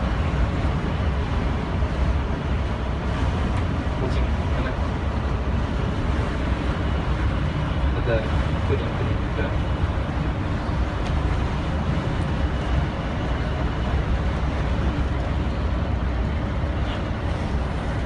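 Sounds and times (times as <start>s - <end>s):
bus engine and road rumble: 0.0s - 18.0s.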